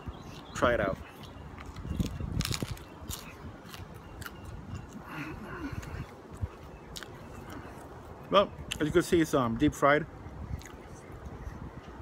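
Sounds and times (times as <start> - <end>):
wind rumbling on microphone: 0.0 - 12.0
chewing: 0.3 - 7.9, 10.6 - 11.1.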